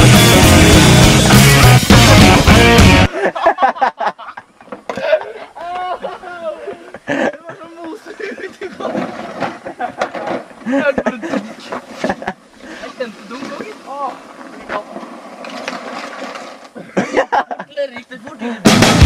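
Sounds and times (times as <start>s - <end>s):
young men laughing and calling out: 3.0s - 14.2s, 16.8s - 18.7s.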